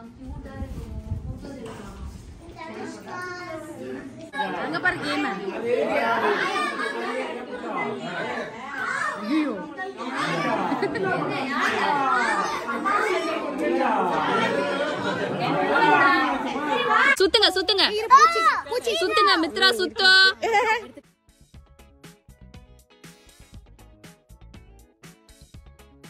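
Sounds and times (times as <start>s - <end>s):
adults and children chattering: 0.0s - 21.0s.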